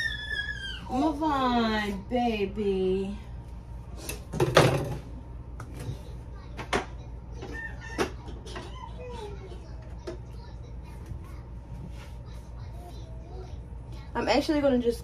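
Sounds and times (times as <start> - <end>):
low steady hum: 0.0 - 15.0
dishes and utensils clattering: 4.0 - 5.1, 5.7 - 10.3.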